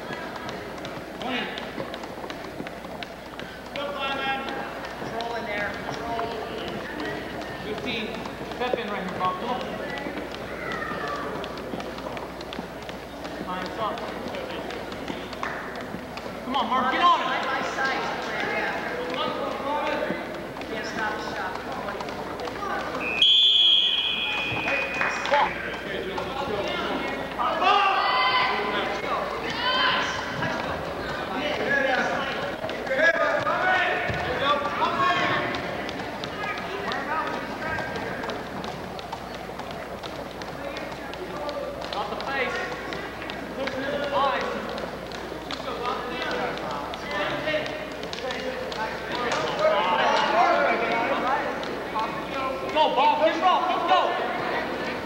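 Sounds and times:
spectators shouting and yelling: 9.8s - 12.0s, 21.9s - 32.4s.

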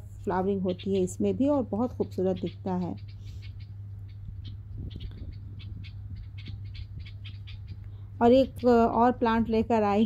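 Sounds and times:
steady low hum: 0.0s - 10.0s
faint bird chirps: 0.3s - 9.3s.

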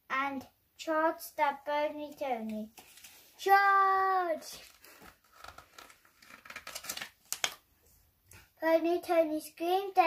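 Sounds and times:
book pages flipping: 2.4s - 3.8s, 4.4s - 7.7s.

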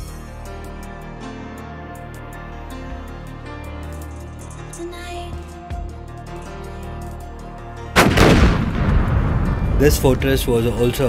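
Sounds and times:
cannon shot boom: 8.0s - 10.0s.

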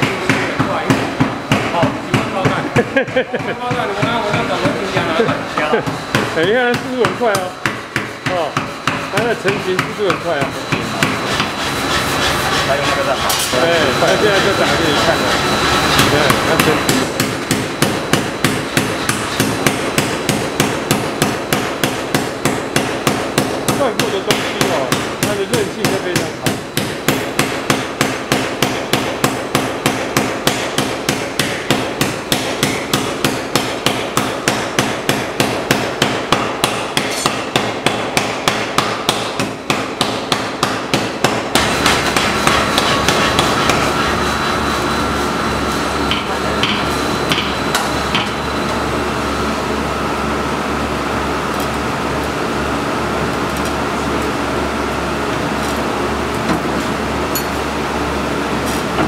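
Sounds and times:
power hammer striking steel: 0.0s - 45.4s, 46.0s - 48.5s
steady machine hum: 0.0s - 59.0s.

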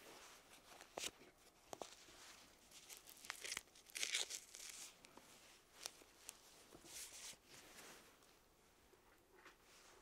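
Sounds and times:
mesh fabric rustling and scraping: 1.8s - 8.5s.

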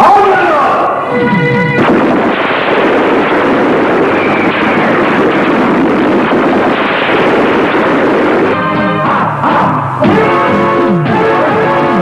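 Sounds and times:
music: 0.1s - 1.9s, 8.2s - 12.0s
loud continuous rushing noise: 0.9s - 12.0s.

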